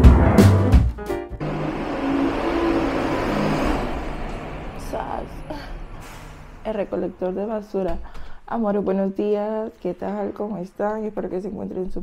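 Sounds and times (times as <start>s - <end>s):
garbage truck engine rumble: 1.4s - 7.6s.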